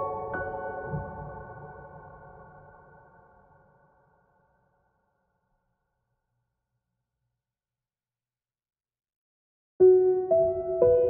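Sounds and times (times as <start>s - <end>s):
soft slow piano music: 0.0s - 3.2s, 9.8s - 11.0s.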